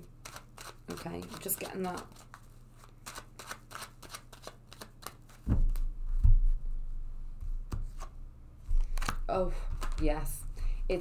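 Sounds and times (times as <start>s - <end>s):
cards being shuffled: 0.2s - 5.9s, 8.7s - 10.3s.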